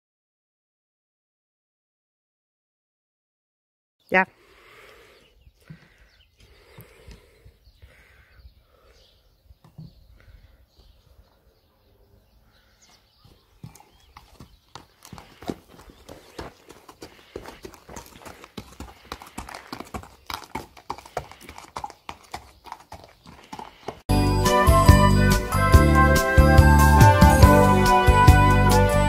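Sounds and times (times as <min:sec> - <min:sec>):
horse hoofbeats on hard ground: 0:13.2 - 0:24.0
loud music: 0:24.1 - 0:29.0.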